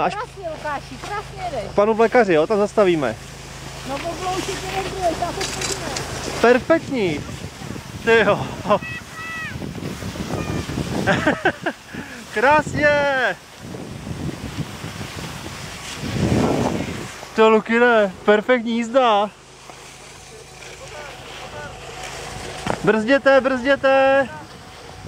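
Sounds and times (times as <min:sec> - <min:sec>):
skis sliding over snow: 0:00.0 - 0:24.9
faint voices: 0:03.8 - 0:10.9, 0:17.8 - 0:25.0
wind rushing over microphone: 0:04.5 - 0:19.3, 0:21.2 - 0:25.0
man shouting: 0:08.2 - 0:09.6
brief high voice: 0:08.7 - 0:09.6, 0:10.3 - 0:10.8.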